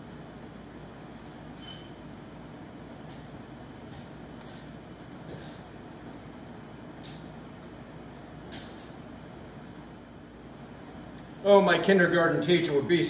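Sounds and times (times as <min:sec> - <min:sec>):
fan running: 0:00.0 - 0:13.0.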